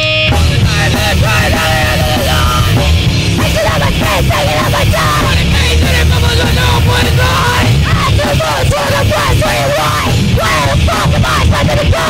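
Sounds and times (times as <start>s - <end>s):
bass and drums: 0.0s - 12.0s
live rock band playing: 0.0s - 12.0s
person yelling vocals: 0.8s - 12.0s.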